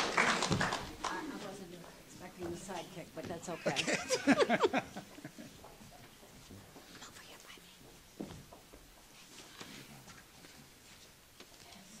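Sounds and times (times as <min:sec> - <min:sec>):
faint voices murmuring and whispering: 0:00.0 - 0:08.0.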